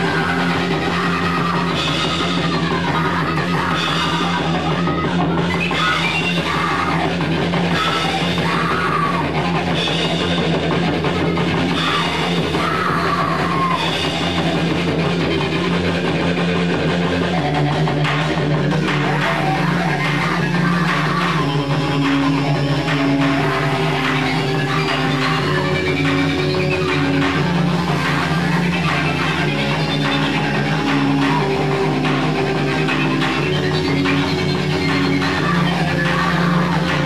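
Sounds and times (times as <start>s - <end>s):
noise-rock band playing loud: 0.0s - 37.0s.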